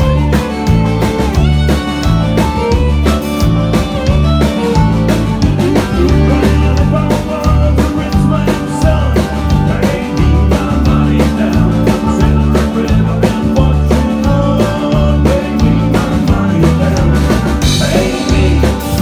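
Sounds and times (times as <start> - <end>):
drum kit steady beat: 0.0 - 19.0
guitar: 0.0 - 19.0
walking bass line: 0.0 - 19.0.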